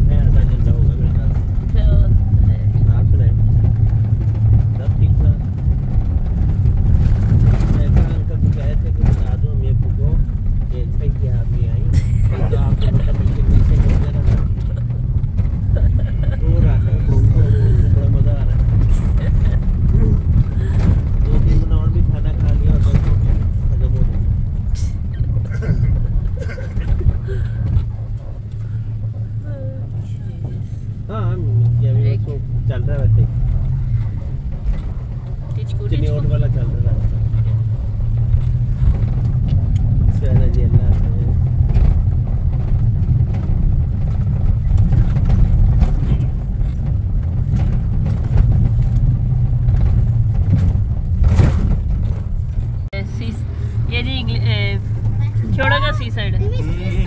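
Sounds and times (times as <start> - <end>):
car driving on dirt road: 0.0 - 57.0.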